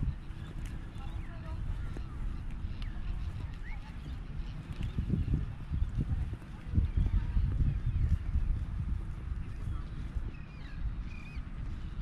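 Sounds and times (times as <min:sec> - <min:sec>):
footsteps on sandy path: 0:00.0 - 0:12.0
wind rumbling on microphone: 0:00.0 - 0:12.0.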